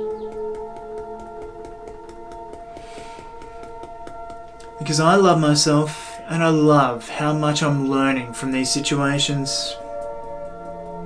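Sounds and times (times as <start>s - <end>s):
fingertips tapping on chest: 0.0s - 5.8s, 9.8s - 11.0s
ambient music of held tones: 0.0s - 11.0s.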